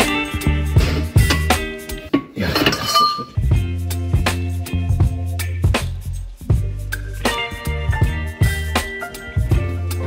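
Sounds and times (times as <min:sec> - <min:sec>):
background music with bass beat: 0:00.0 - 0:10.0.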